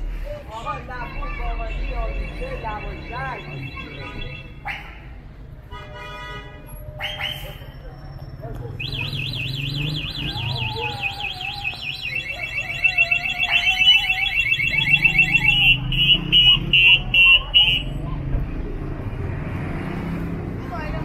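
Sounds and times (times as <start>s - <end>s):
street noise: 0.0s - 21.0s
car alarm cycling tones: 8.8s - 16.5s.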